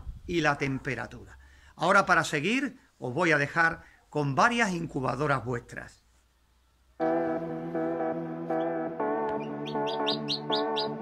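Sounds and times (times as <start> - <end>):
background music sustained notes: 7.0 - 11.0
chicks peeping: 8.6 - 11.0.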